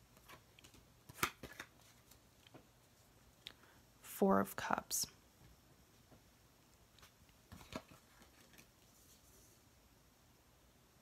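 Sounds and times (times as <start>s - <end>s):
cards tapping and rustling: 0.1s - 2.7s, 7.0s - 9.2s.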